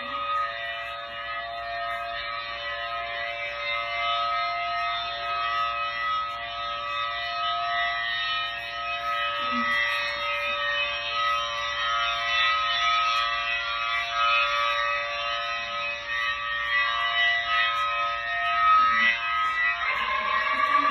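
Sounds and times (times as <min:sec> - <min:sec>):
rotating tornado siren: 0:00.0 - 0:20.9.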